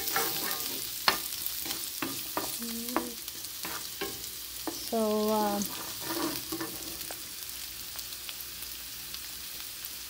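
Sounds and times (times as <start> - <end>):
spatula scraping a pan: 0.0 - 7.3
garlic sizzling in hot oil: 0.0 - 10.0.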